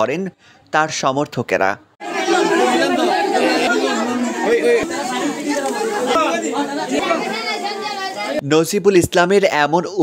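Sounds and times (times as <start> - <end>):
crowd talking: 2.0 - 8.4.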